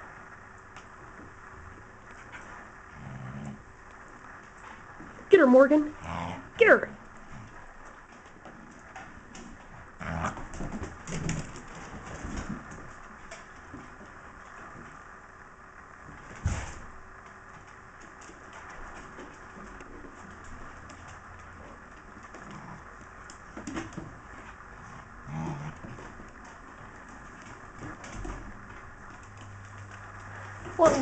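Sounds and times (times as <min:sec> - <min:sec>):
dogs play-growling: 0:01.1 - 0:05.3, 0:05.9 - 0:15.0, 0:17.6 - 0:31.0.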